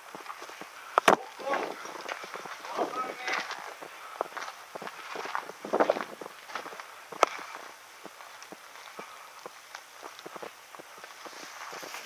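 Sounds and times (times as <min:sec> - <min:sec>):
footsteps on gravel and grass: 0:00.0 - 0:12.0.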